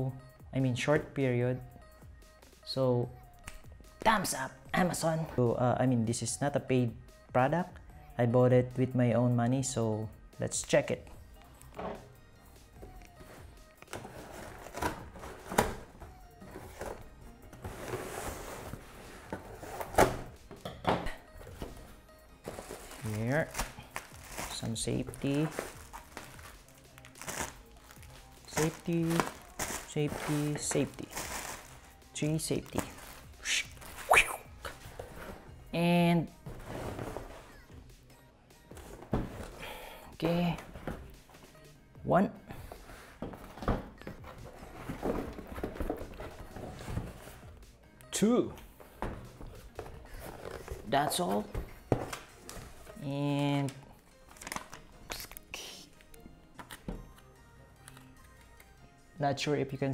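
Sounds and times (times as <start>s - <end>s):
cardboard and tape scraping: 17.6s - 20.3s.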